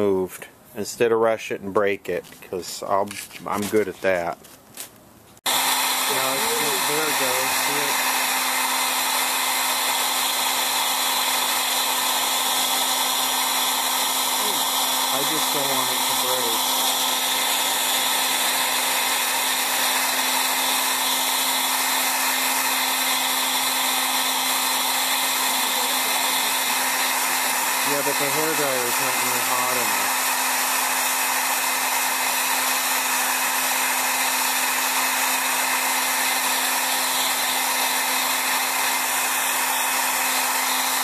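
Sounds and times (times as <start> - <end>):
hair dryer blowing: 5.4 - 41.0
hair dryer switch: 5.5 - 41.0.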